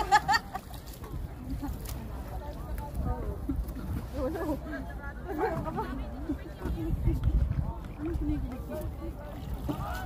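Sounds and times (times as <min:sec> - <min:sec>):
low wind rumble: 0:00.0 - 0:10.0.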